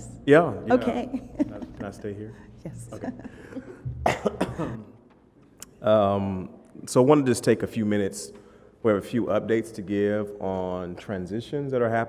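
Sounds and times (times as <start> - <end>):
person coughing: 3.3 - 5.0.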